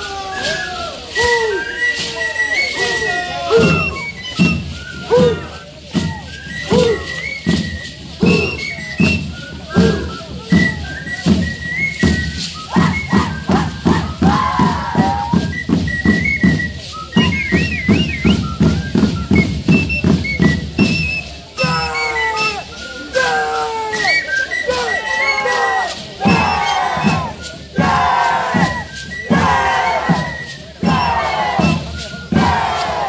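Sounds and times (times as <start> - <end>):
short high whistles: 0.0 - 33.0
wavering whistled trill: 0.0 - 33.0
people shouting: 2.7 - 4.0, 5.1 - 5.6, 6.7 - 7.2, 9.8 - 10.1, 12.7 - 15.3, 21.6 - 24.1, 24.7 - 31.8, 32.4 - 33.0.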